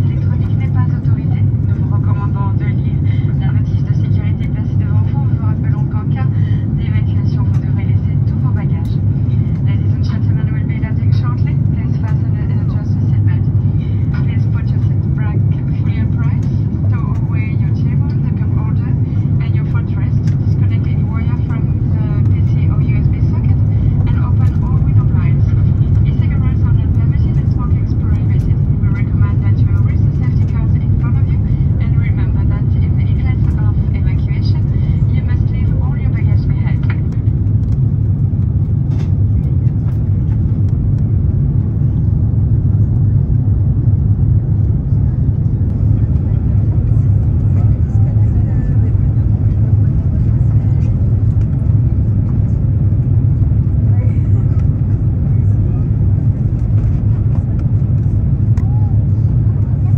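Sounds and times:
airplane cabin engine rumble: 0.0s - 59.9s
indistinct passenger voices: 0.0s - 59.9s.

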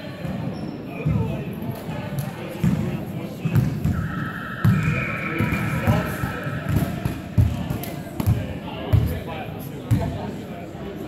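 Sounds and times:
voices in large hall: 0.0s - 11.0s.

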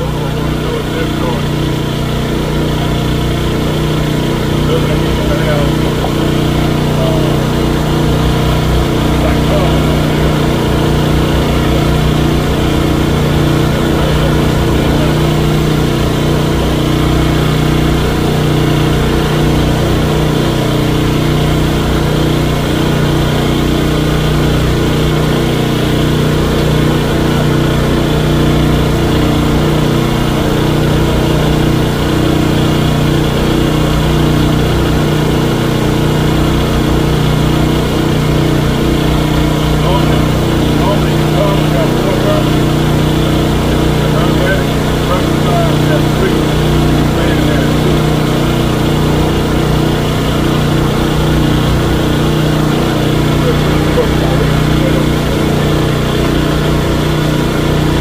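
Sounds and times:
generator engine humming: 0.0s - 58.0s.

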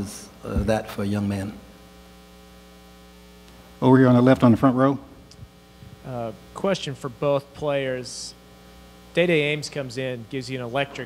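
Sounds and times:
man speaking: 0.0s - 1.7s, 3.8s - 5.2s, 6.0s - 8.4s, 9.1s - 11.0s
low electrical hum: 0.0s - 11.0s.

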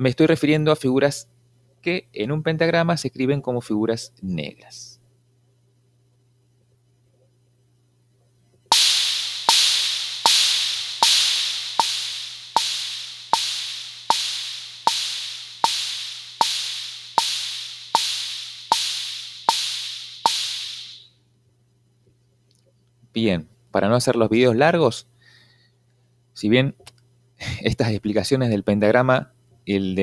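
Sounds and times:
drum machine bongo taps: 8.7s - 21.1s
hissing hi-hat: 8.7s - 21.1s.

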